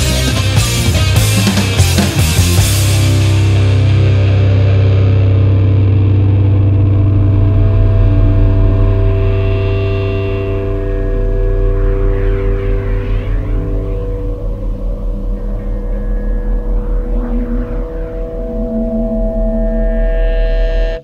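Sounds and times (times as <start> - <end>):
deep bass drone: 0.0 - 21.0
distorted guitar and bass chord: 0.0 - 21.0.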